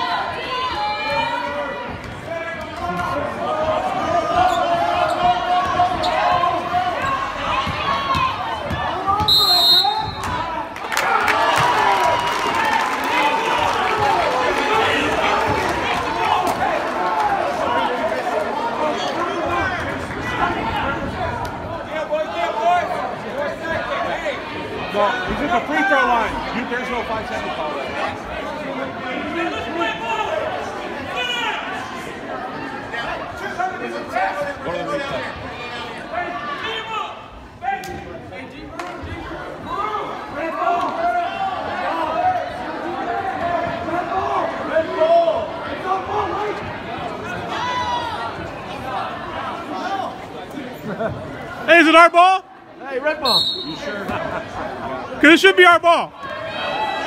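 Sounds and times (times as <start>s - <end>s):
crowd talking and calling out: 0.0s - 57.0s
referee whistle blast: 9.2s - 10.3s, 53.2s - 53.9s.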